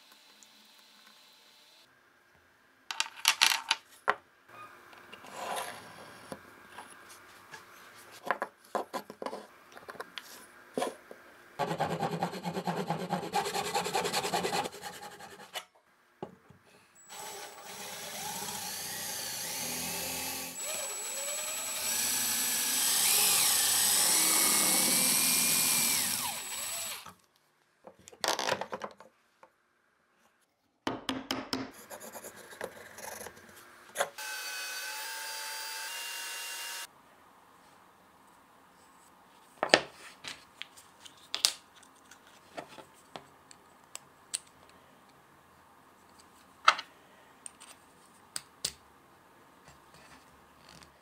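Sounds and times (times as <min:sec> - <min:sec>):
handsaw cutting wood: 0:11.6 - 0:15.5, 0:17.1 - 0:27.0
power tool motor whining: 0:17.0 - 0:27.1, 0:34.2 - 0:36.9.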